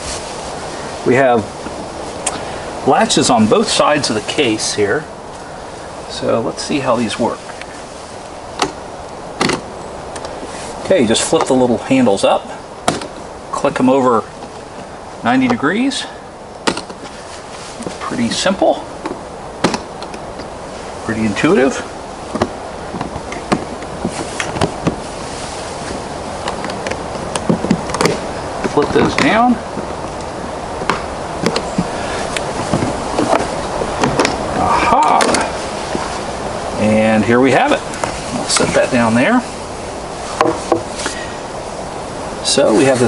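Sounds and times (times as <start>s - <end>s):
steady background hiss: 0.0s - 43.0s.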